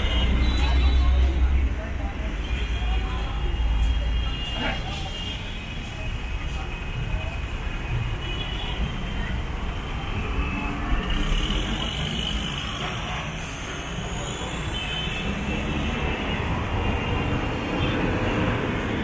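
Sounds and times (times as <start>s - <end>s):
indistinct chatter of people: 0.0s - 19.0s
traffic rumble: 0.0s - 19.0s.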